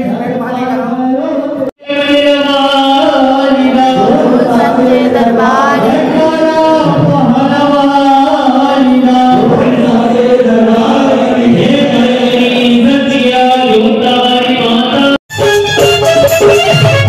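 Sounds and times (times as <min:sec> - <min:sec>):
devotional chanting: 0:00.0 - 0:15.2.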